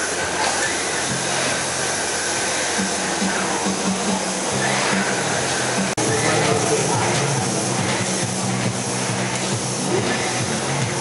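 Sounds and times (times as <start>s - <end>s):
crowd noise: 0.0s - 11.0s
machinery noise: 0.0s - 11.0s.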